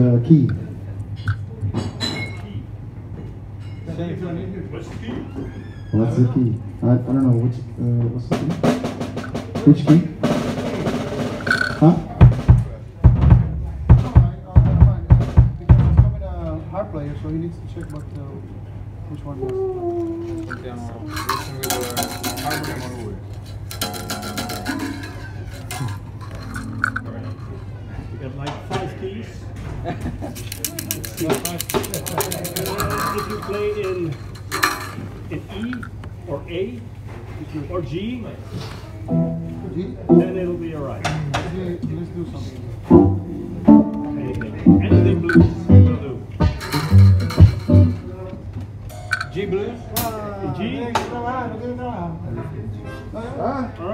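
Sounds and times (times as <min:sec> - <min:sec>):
background talk: 0:00.0 - 0:53.9
short held instrument notes: 0:39.1 - 0:40.6, 0:42.9 - 0:48.2.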